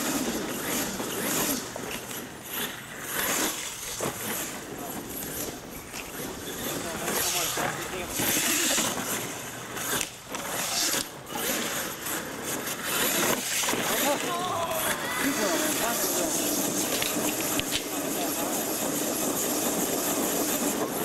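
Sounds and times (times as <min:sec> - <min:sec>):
toy truck motor surging: 0:00.0 - 0:21.0
people talking: 0:06.6 - 0:09.1, 0:13.8 - 0:19.0.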